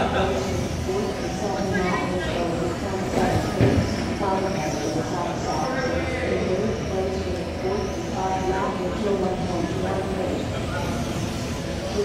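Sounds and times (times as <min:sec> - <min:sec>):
steady hall rumble: 0:00.0 - 0:12.0.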